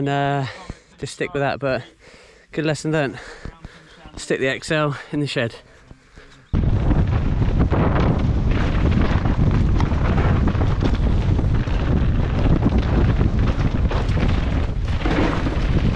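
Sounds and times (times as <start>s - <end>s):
wind buffeting microphone: 6.5s - 15.9s
mountain bike rattling over trail: 6.8s - 15.9s.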